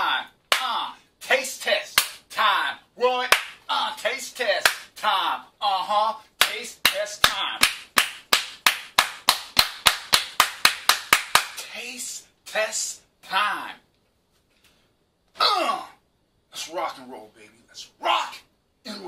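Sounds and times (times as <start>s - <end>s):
man vocalising: 0.0s - 7.7s, 15.4s - 16.0s
hand claps: 0.5s - 0.8s, 2.0s - 2.2s, 3.3s - 3.7s, 4.6s - 5.0s, 6.4s - 11.7s.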